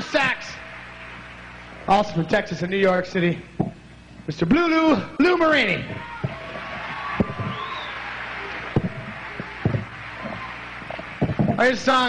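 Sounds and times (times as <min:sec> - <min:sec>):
audience applauding and cheering: 0:00.0 - 0:02.3, 0:05.8 - 0:12.0
sharp knocks: 0:05.8 - 0:07.9, 0:08.7 - 0:11.6
short whistle: 0:07.4 - 0:08.0.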